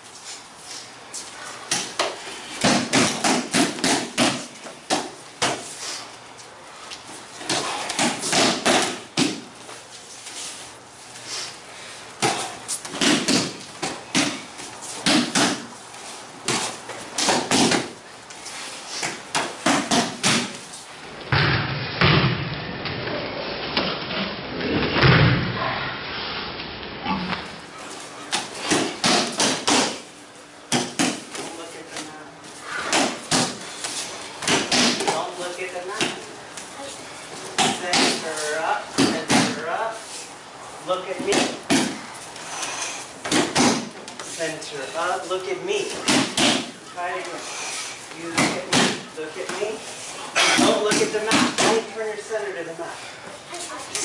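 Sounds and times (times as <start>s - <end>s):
bodies slapping a padded mat: 1.7s - 5.7s, 7.4s - 9.7s, 12.2s - 15.8s, 16.4s - 18.0s, 19.0s - 20.7s, 28.3s - 30.1s, 30.7s - 31.6s, 32.6s - 36.3s, 37.4s - 39.7s, 41.1s - 42.1s, 43.2s - 44.3s, 45.9s - 47.3s, 48.2s - 49.7s.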